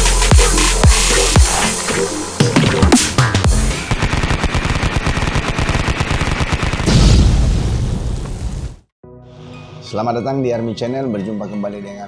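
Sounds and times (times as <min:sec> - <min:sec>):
electronic music: 0:00.0 - 0:04.5
deep boom: 0:06.8 - 0:08.8.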